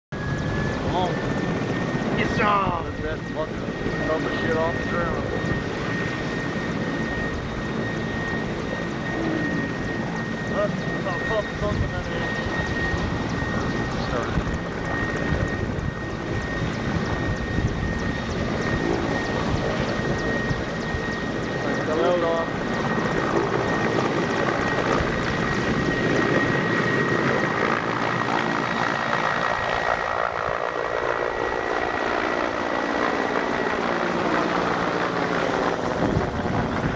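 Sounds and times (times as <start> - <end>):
helicopter engine and rotor noise: 0.1 - 36.9
high-pitched whine: 0.2 - 28.0.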